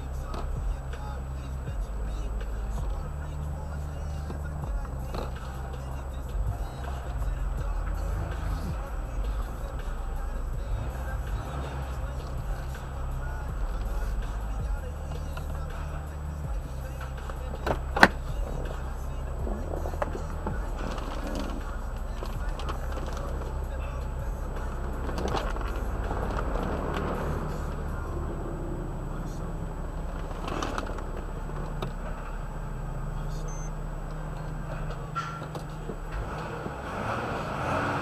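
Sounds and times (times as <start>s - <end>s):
faint voices: 0.0s - 38.0s
low hum: 0.0s - 38.0s.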